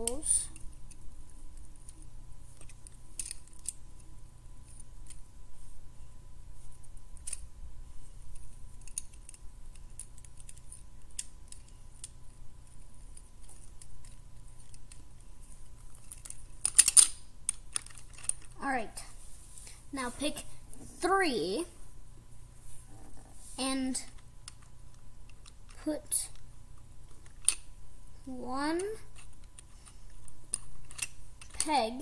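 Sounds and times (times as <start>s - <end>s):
plastic toy bricks clicking: 30.5s - 31.6s.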